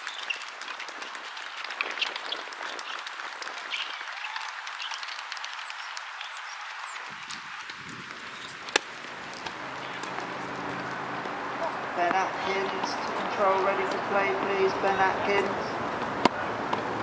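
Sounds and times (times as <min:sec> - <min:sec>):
spectators applauding: 0:00.0 - 0:11.9.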